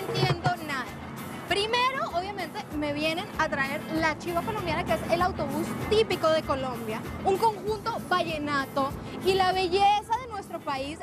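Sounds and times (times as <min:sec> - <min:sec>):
accordion and hand drum music: 0:00.0 - 0:11.0.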